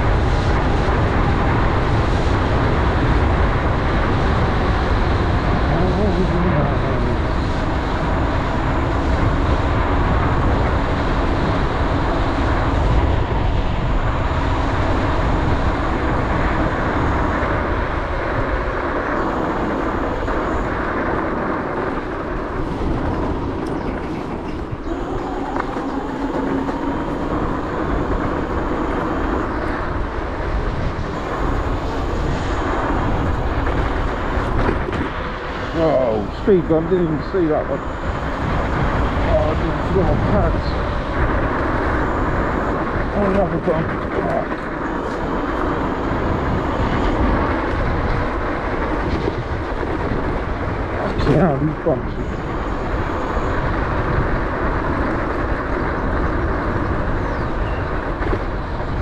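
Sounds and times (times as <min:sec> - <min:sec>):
electric motor whine: 0:00.0 - 0:50.9
wind noise on microphone: 0:00.0 - 0:59.0.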